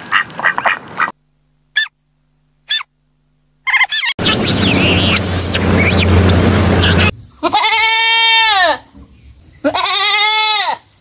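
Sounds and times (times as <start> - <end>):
goat bleating: 4.4 - 8.8, 9.6 - 10.8.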